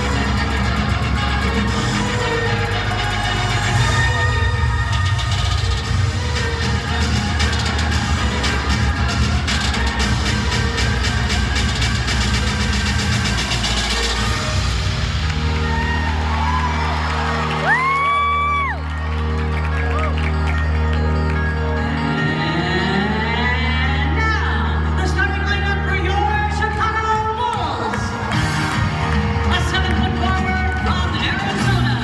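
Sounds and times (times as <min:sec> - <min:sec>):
arena music over loudspeakers: 0:00.0 - 0:32.0
crowd cheering: 0:13.2 - 0:21.8.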